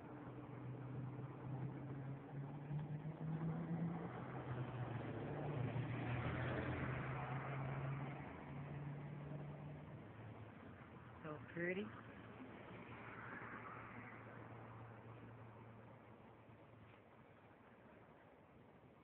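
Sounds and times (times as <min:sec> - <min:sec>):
low engine hum: 0:00.0 - 0:19.0.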